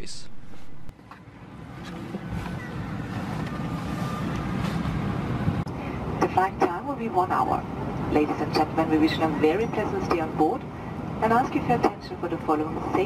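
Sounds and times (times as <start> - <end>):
airplane cabin rumble: 0.0 - 13.0.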